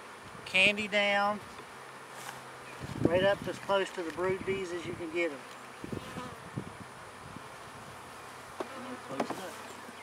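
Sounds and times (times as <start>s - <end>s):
honeybees buzzing: 0.0s - 10.0s
sharp knocks on hive cover: 8.6s - 9.5s.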